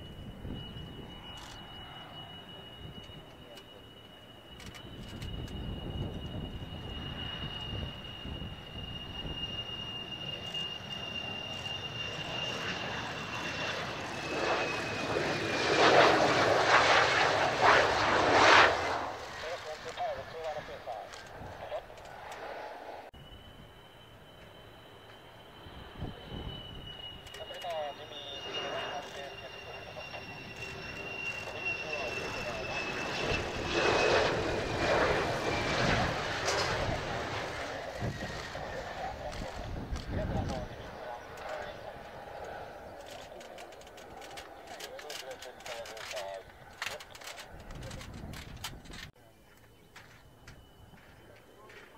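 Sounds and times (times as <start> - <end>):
jet aircraft engines roaring: 0.0 - 51.9.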